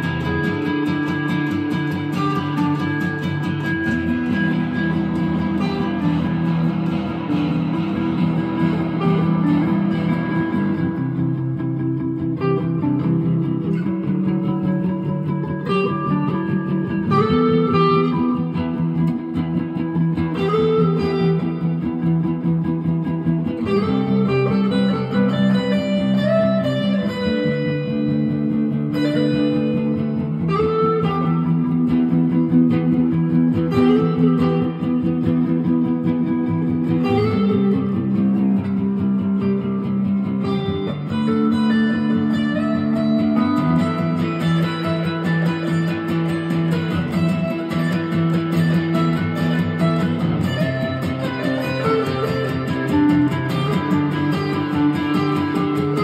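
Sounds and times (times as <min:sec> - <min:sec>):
guitars playing chords: 0:00.0 - 0:56.0
sliding guitar melody: 0:00.0 - 0:56.0.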